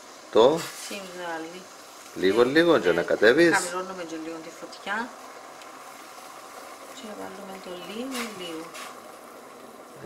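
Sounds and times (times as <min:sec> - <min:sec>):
water boiling in a pot: 0:00.0 - 0:10.0.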